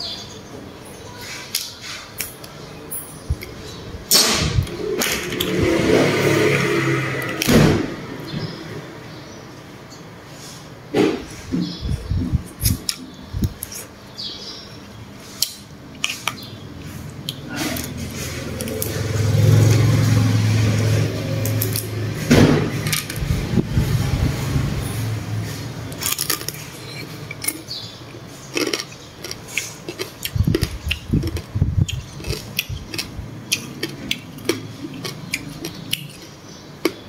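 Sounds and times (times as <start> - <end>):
steady low hum: 2.5 - 37.0
crab eating noise: 12.4 - 37.0.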